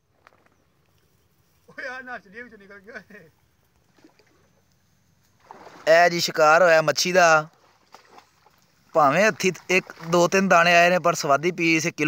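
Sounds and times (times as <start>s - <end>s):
man speaking: 1.7s - 3.4s, 8.9s - 12.0s.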